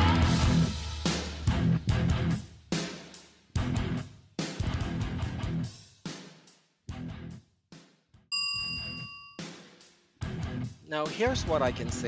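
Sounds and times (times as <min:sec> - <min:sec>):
bright bell-like ding: 0:08.3 - 0:09.6
soft background guitar music: 0:10.2 - 0:12.0.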